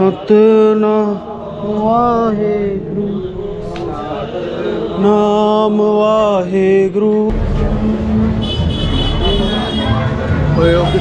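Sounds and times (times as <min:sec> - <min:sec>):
crowd voices: 0:00.0 - 0:06.0, 0:07.0 - 0:11.0
engine rumble: 0:07.3 - 0:09.4
music: 0:07.3 - 0:11.0.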